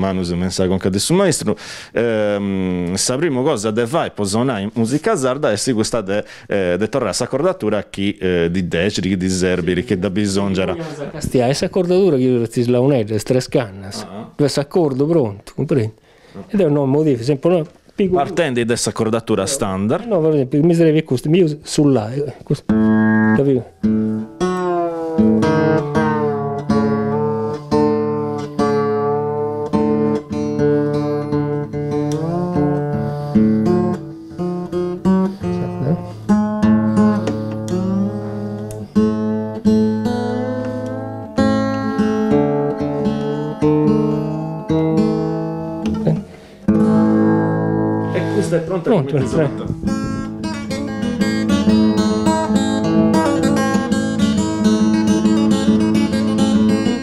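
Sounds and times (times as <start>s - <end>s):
guitar strummed while retuning: 22.7s - 46.1s, 46.7s - 48.3s, 49.2s - 57.0s.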